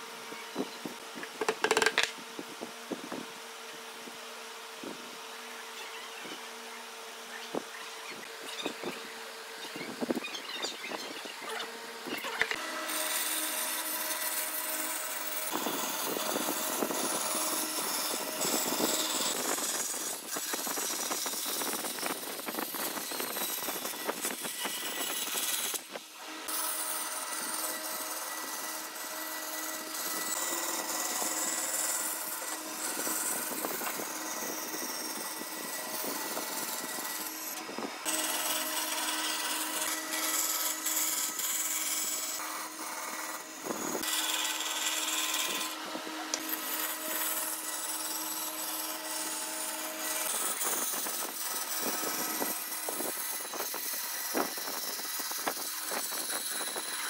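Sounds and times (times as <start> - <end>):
band saw cutting wood: 0.0 - 2.2, 4.0 - 57.0.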